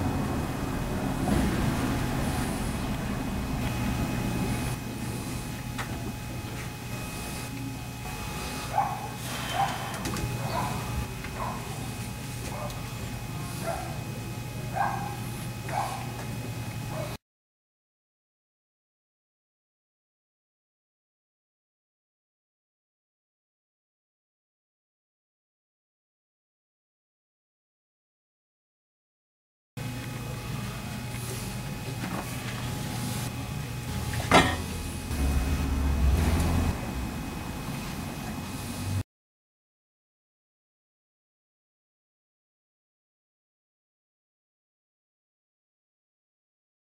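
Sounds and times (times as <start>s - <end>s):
room noise: 0.0s - 17.1s, 30.0s - 39.0s
steady low hum: 0.0s - 17.2s, 29.8s - 39.0s
dog yelping: 8.7s - 9.8s, 10.4s - 10.8s, 11.4s - 11.7s, 14.8s - 16.0s
low rumble: 35.0s - 39.0s.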